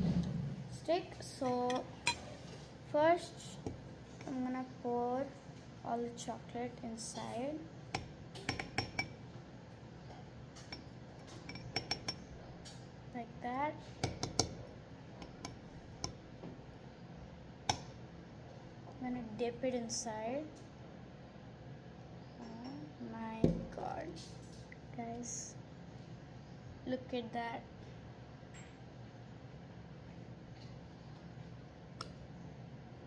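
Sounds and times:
metal bowl clinking: 1.4s - 2.5s, 7.9s - 9.2s, 10.6s - 12.3s.

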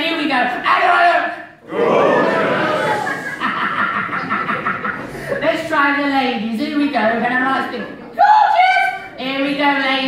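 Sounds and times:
scattered voices: 1.6s - 3.4s
audience laughing: 1.8s - 5.5s.

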